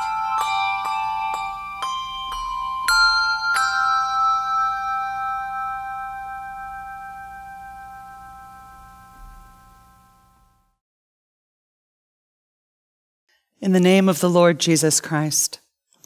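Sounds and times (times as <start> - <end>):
handbells ringing: 0.0 - 9.7.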